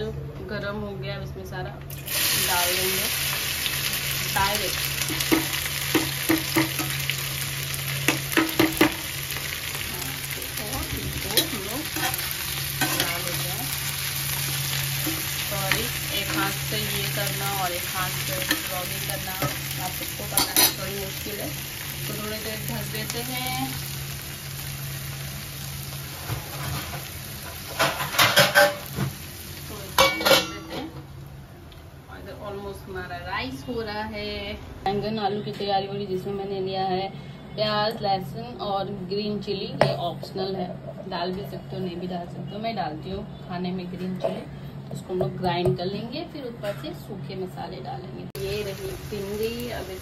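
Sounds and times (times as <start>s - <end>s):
okra sizzling in oil: 1.9s - 31.3s, 48.3s - 50.0s.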